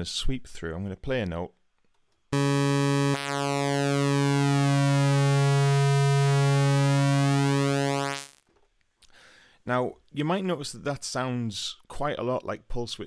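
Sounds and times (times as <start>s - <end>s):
synthesizer low note with sweep: 2.4s - 8.4s.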